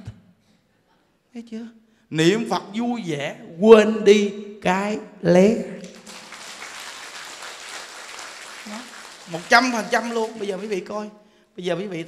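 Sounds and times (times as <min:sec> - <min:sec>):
audience applauding: 0:05.8 - 0:11.0.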